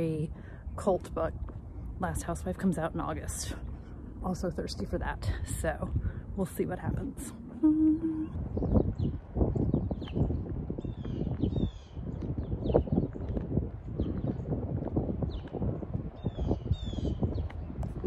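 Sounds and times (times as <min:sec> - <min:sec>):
songbirds chirping: 0:00.0 - 0:14.6, 0:15.2 - 0:18.0
walking footsteps: 0:01.0 - 0:04.4, 0:09.1 - 0:16.4.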